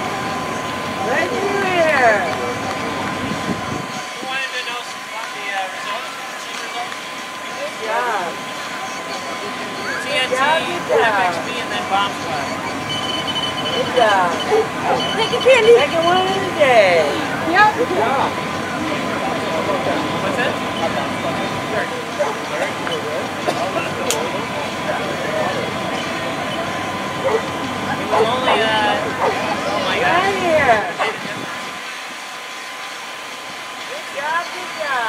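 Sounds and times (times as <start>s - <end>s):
spectators chatting: 0.0s - 35.0s
steady mechanical hum: 0.0s - 35.0s
thin steady tone: 0.0s - 35.0s.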